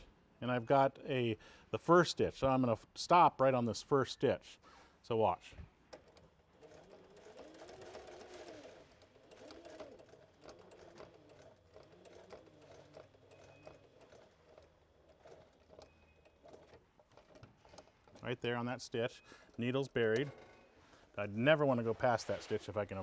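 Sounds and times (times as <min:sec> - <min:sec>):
sewing machine stitching: 0:05.8 - 0:23.0.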